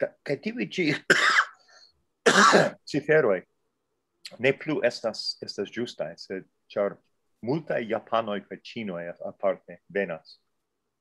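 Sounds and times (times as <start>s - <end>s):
man coughing: 0.9s - 1.6s, 2.3s - 2.8s.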